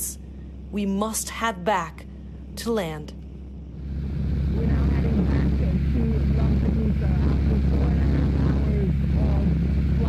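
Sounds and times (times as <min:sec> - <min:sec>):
woman talking: 0:00.0 - 0:03.2, 0:04.3 - 0:10.0
light aircraft engine drone: 0:00.0 - 0:10.0.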